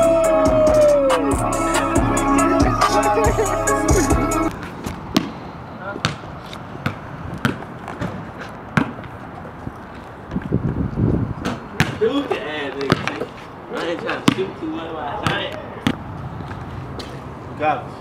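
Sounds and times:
hip-hop music: 0.0s - 4.5s
voices: 0.0s - 4.5s, 11.7s - 16.0s
basketball bouncing on concrete: 4.9s - 5.4s, 6.0s - 9.2s, 11.4s - 17.1s.

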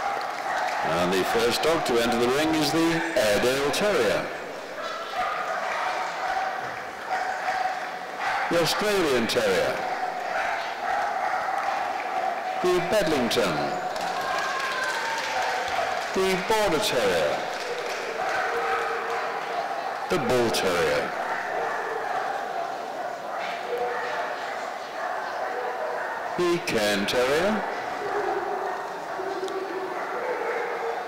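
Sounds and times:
audience clapping in echoing hall: 0.0s - 2.8s, 5.8s - 7.2s, 10.1s - 21.6s
indoor crowd murmur: 0.0s - 31.0s
dog barking: 4.8s - 14.2s, 16.9s - 31.0s.

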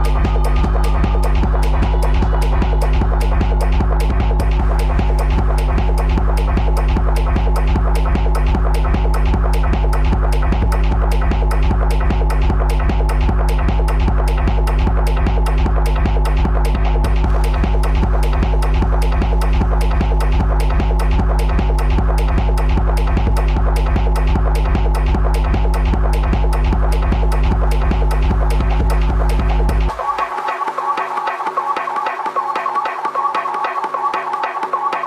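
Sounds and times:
throbbing bass: 0.0s - 30.0s
fast beat of sharp ticks: 0.0s - 35.0s
techno dj mix: 0.0s - 35.0s.

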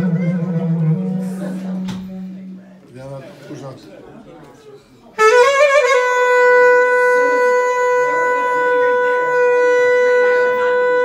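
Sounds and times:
clarinet long note: 0.0s - 2.8s, 5.2s - 11.0s.

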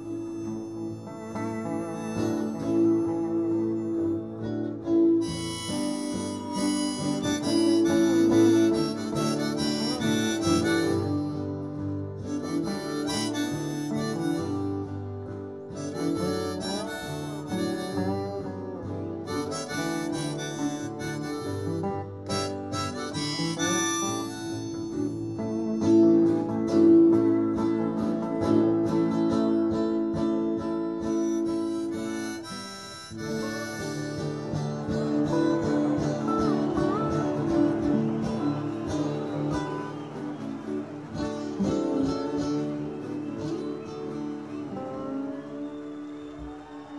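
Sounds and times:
backing band: 0.0s - 46.9s
harmonica solo: 0.0s - 46.9s
strummed acoustic guitar: 0.0s - 46.9s.

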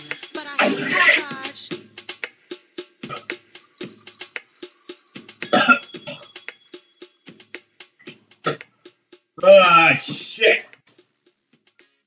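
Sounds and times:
background music with clicking beat: 0.0s - 12.0s
man coughing harshly: 5.5s - 6.3s.

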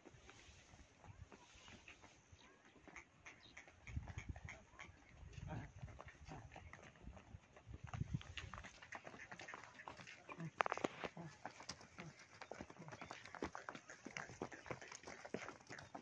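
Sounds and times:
soft hoof steps: 0.0s - 16.0s.

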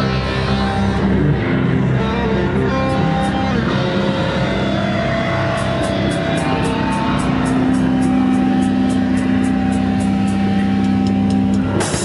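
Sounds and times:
distorted electric guitar chord: 0.0s - 12.0s.

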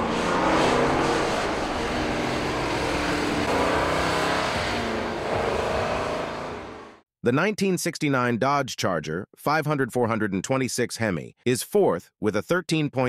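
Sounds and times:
car engine running: 0.0s - 7.0s.

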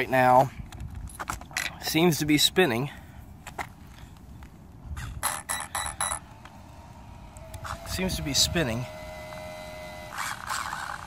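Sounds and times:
servo whirring: 5.0s - 11.0s.

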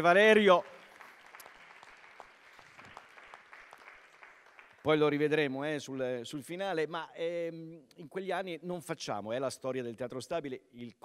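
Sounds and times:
faint audience applause: 0.0s - 5.4s.

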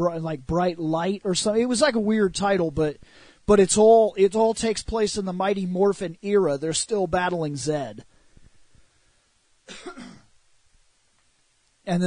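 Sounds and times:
man clearing his throat: 9.7s - 10.3s.

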